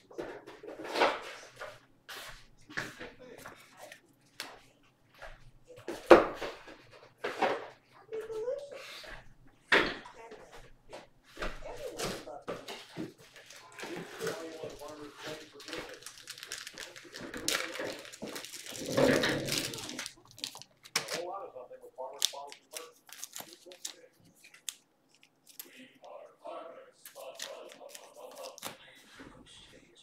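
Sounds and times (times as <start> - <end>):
person talking: 11.6 - 24.6, 25.6 - 30.0
plastic wrapper crackling: 13.2 - 21.3, 22.0 - 25.8, 27.1 - 28.8.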